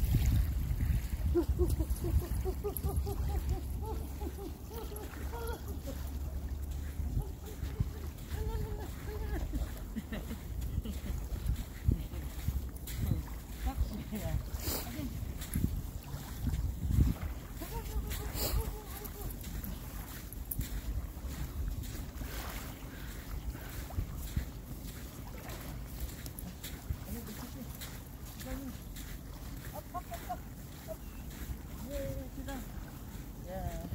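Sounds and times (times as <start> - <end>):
wind buffeting microphone: 0.0 - 27.3.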